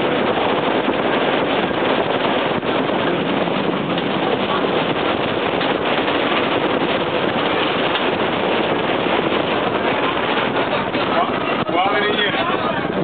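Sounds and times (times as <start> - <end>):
streetcar running on rails: 0.0 - 13.0
wind rushing: 0.0 - 13.0.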